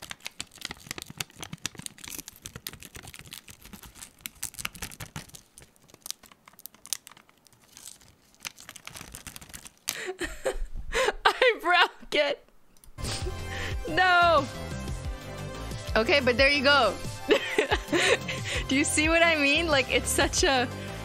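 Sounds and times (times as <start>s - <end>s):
dried polish film crinkling and crackling: 0.0s - 10.2s.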